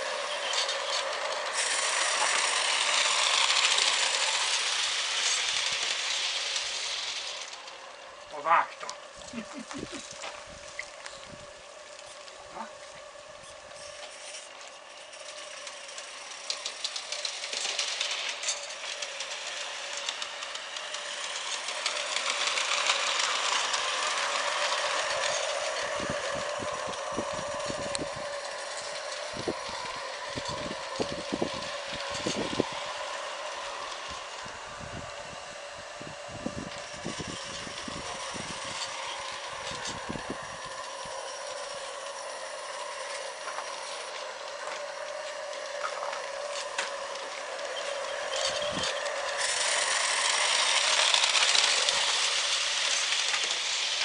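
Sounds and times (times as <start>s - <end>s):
steam and burner hissing: 0.0s - 54.0s.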